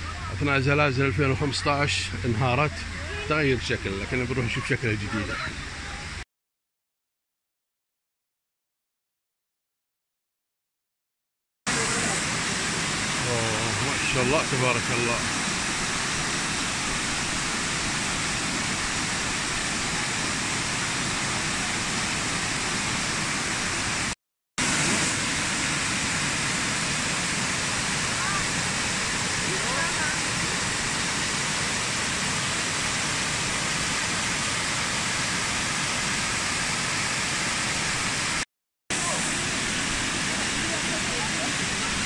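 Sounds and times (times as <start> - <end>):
waterfall rushing: 11.7 - 42.0.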